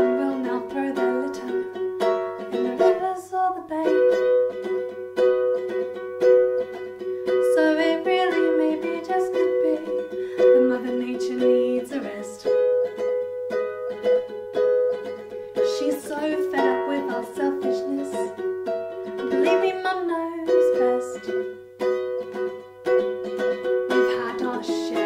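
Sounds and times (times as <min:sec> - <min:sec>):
woman singing: 0:00.0 - 0:01.8, 0:02.5 - 0:04.6, 0:07.4 - 0:12.7, 0:15.6 - 0:18.5, 0:19.2 - 0:21.6, 0:23.9 - 0:25.0
ukulele strumming chords: 0:00.0 - 0:25.0.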